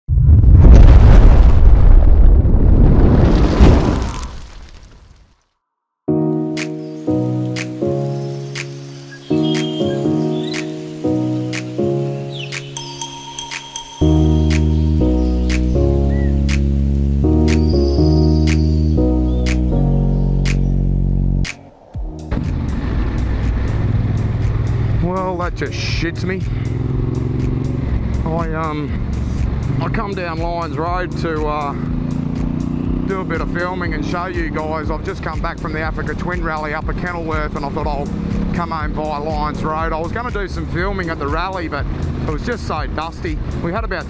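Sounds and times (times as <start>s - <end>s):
deep bass: 0.0s - 3.4s, 14.0s - 44.0s
loud whoosh: 0.1s - 4.2s, 21.4s - 25.0s
stepped-note tune with ticking beat: 6.1s - 22.6s, 23.3s - 44.0s
motorcycle running on road: 22.3s - 44.0s.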